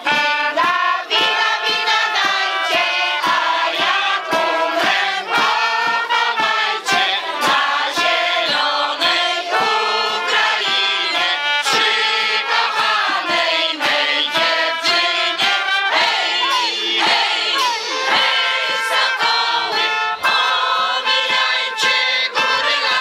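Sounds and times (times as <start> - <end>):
large choir singing: 0.0 - 23.0.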